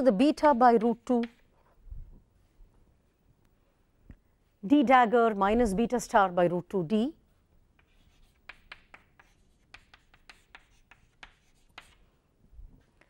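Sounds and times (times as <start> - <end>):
chalk tapping and scratching: 7.8 - 12.2.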